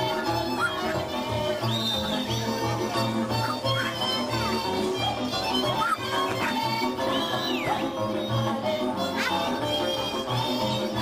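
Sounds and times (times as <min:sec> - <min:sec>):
fiddle melody: 0:00.0 - 0:11.0
folk band dance music: 0:00.0 - 0:11.0.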